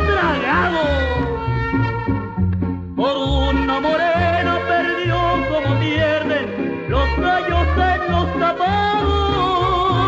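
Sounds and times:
bass line: 0.0s - 10.0s
violin melody: 0.0s - 10.0s.

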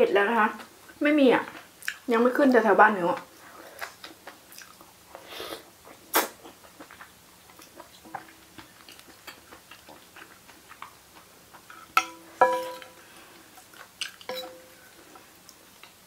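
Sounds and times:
soft chewing clicks: 0.6s - 2.1s, 3.2s - 5.2s, 5.9s - 11.9s, 14.9s - 16.0s.

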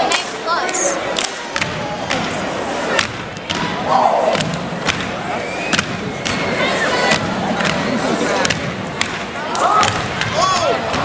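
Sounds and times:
noisy crowd: 0.0s - 11.0s
stomps and hand claps: 7.1s - 11.0s.

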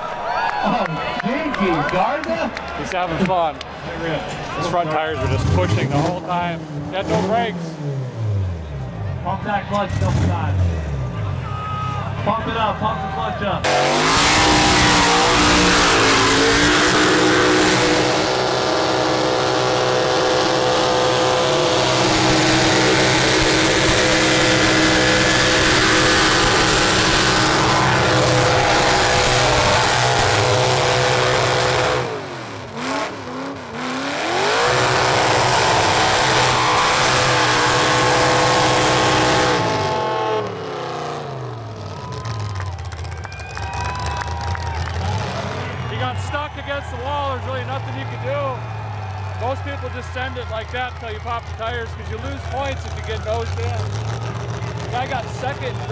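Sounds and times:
car engine at high revs: 4.6s - 11.3s, 13.6s - 46.6s, 47.3s - 55.9s.

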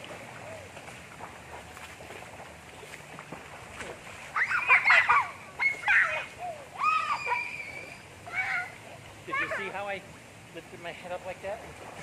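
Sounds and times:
children calling and squealing: 4.3s - 9.7s.

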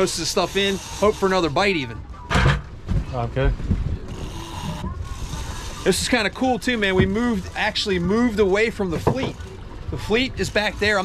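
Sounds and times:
boat engine rumbling: 0.0s - 11.0s
wind: 0.0s - 11.0s.

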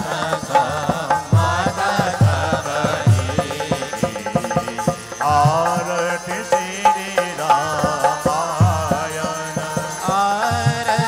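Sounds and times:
devotional chanting: 0.0s - 11.0s
quick light drum beat: 0.0s - 11.0s.

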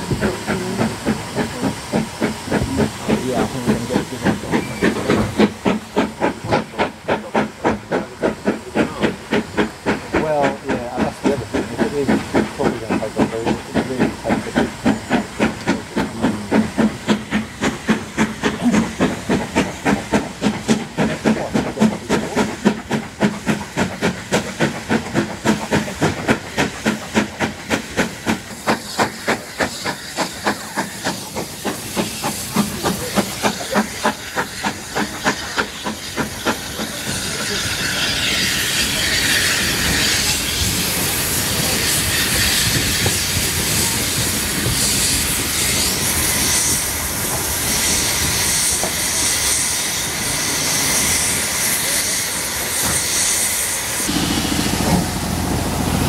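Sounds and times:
steam hissing: 0.0s - 56.0s
steam locomotive chuffing: 0.0s - 56.0s.

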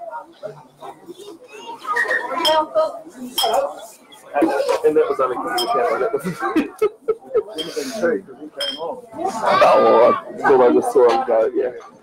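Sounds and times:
people talking: 0.0s - 12.0s
tableware clinking: 3.4s - 3.7s, 5.5s - 6.0s, 8.6s - 8.9s.

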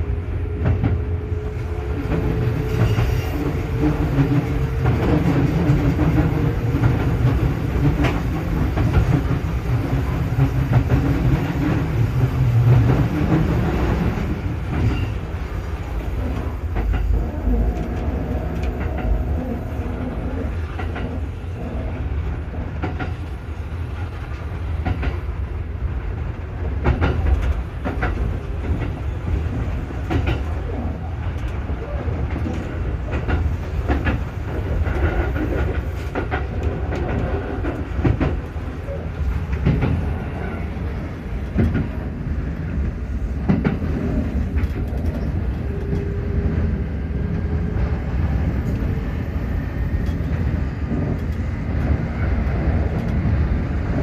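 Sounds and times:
train wheels rumbling on rail: 0.0s - 54.0s
wheels clicking over rail joints: 15.8s - 21.4s, 26.7s - 40.7s.

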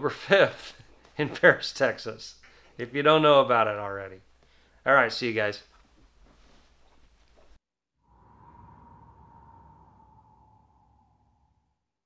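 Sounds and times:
low rumble: 8.0s - 12.0s.

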